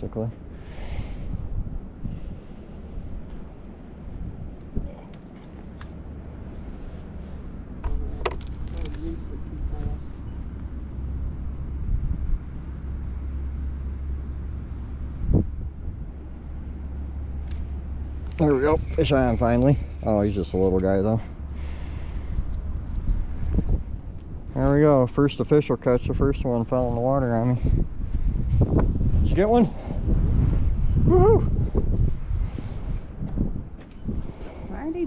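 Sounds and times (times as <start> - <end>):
wind on microphone: 0.6 - 5.2, 6.4 - 20.2, 21.4 - 24.8, 26.0 - 35.0.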